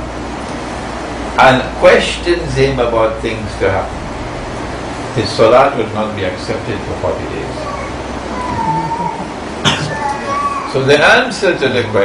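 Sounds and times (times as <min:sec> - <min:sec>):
room hum: 0:00.0 - 0:12.0
man coughing: 0:09.6 - 0:10.1.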